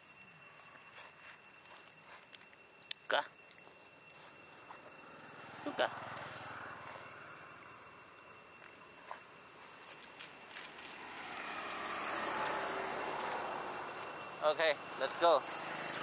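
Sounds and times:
vehicle passing by: 5.0s - 7.9s, 10.7s - 16.0s.

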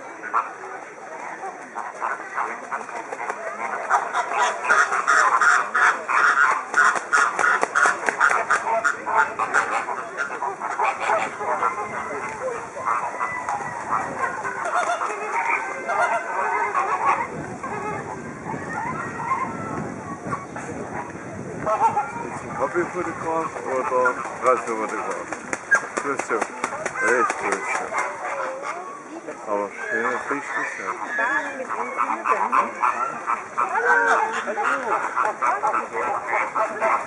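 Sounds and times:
flamingos honking and gabbling: 0.0s - 37.0s.

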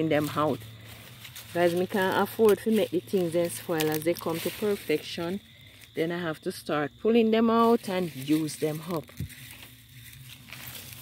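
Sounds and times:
plant rustling and crackling: 0.0s - 6.4s, 7.5s - 11.0s.

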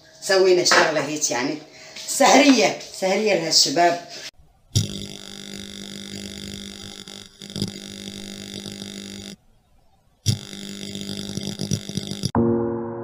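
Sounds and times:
steady electric buzz: 4.3s - 12.4s.

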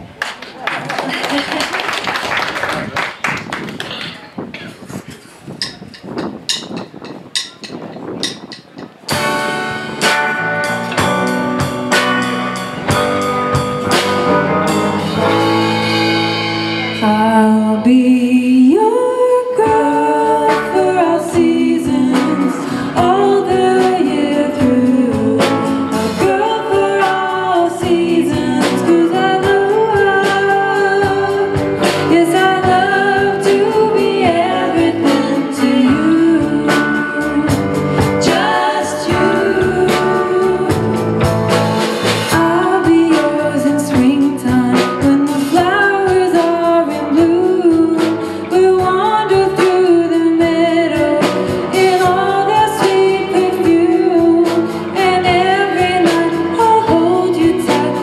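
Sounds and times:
rock band playing: 5.7s - 18.0s, 19.2s - 58.0s
woman singing: 16.9s - 41.0s, 42.3s - 58.0s.

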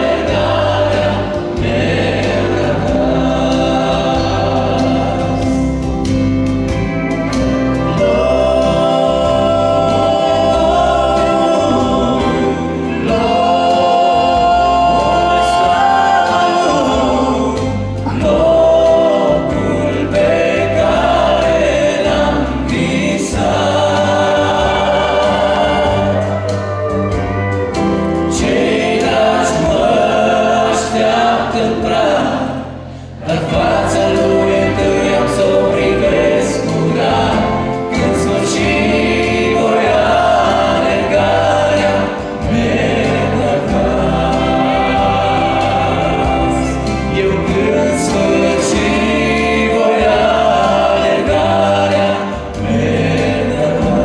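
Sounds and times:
low steady accompaniment: 0.0s - 54.0s
men singing gospel in harmony: 0.0s - 54.0s.

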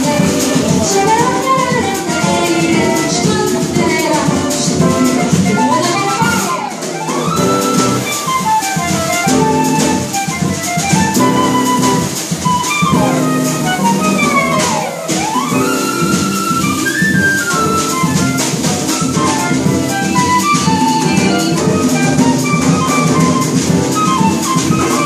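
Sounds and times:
drum kit with cymbal strokes: 0.0s - 25.0s
flute melody: 0.0s - 25.0s
piano: 0.0s - 25.0s
upright double bass: 15.9s - 25.0s.

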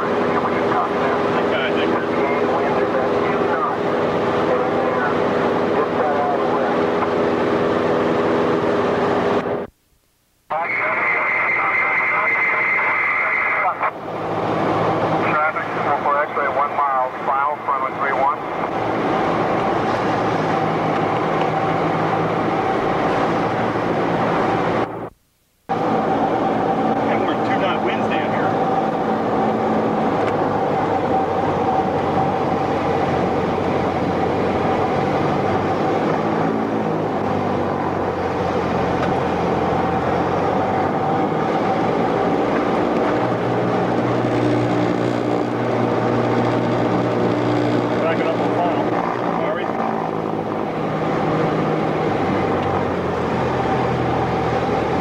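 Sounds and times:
propeller aircraft engine droning: 0.0s - 9.8s, 10.4s - 55.0s.

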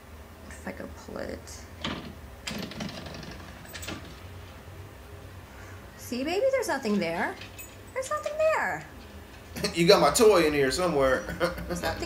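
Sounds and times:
steady low hum: 0.0s - 12.0s
louvered closet door rattling: 1.8s - 4.4s.

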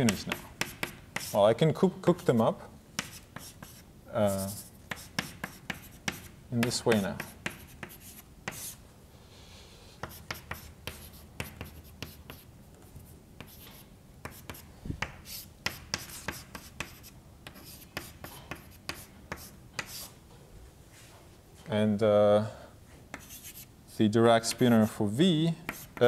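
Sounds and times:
chalk tapping and scratching: 0.0s - 1.4s, 3.0s - 8.8s, 10.0s - 20.1s, 23.1s - 25.0s, 25.7s - 26.0s.

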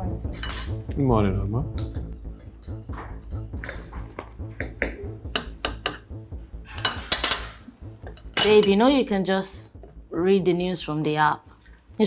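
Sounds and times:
cutlery clinking on dishes: 6.7s - 8.8s.

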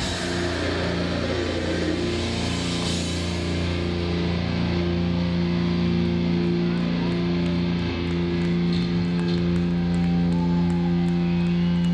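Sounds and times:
electric guitar droning chord: 0.0s - 11.9s.

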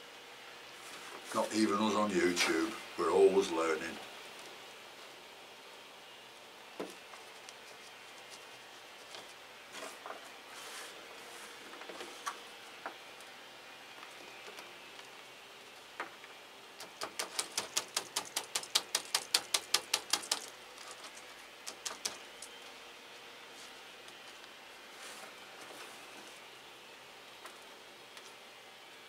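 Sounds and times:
steady faint hiss: 0.0s - 29.0s
potting chips rustling: 16.8s - 22.7s.

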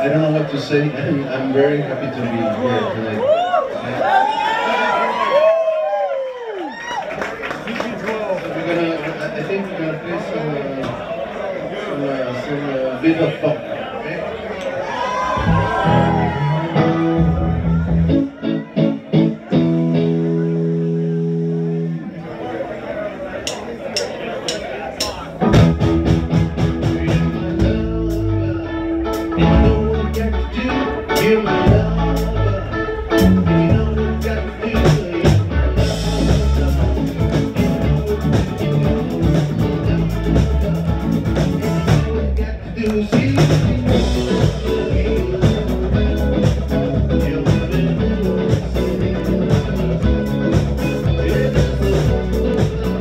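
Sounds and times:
drums: 15.1s - 22.0s, 23.4s - 53.0s
rock band playing: 15.1s - 22.2s, 23.5s - 53.0s.

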